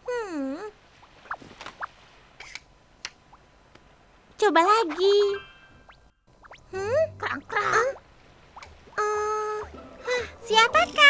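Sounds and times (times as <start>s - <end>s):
cartoon character humming: 6.7s - 8.0s.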